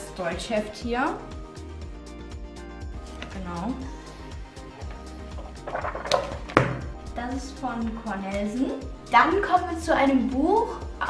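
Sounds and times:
background music: 0:00.0 - 0:11.0
paper pages flipping: 0:04.8 - 0:06.9.

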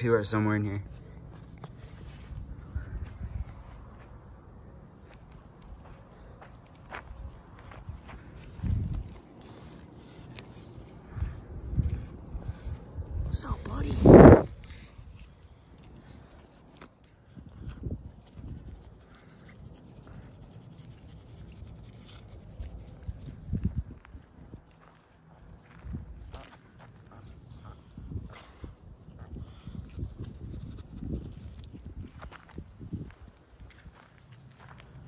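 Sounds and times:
footsteps on dry dirt: 0:00.8 - 0:18.3, 0:21.9 - 0:30.5, 0:31.3 - 0:35.0.

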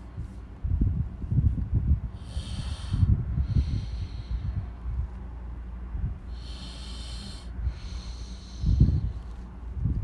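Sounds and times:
breathing into microphone: 0:02.1 - 0:04.9, 0:06.2 - 0:09.3
hissing breaths: 0:02.1 - 0:04.9, 0:06.2 - 0:09.4.

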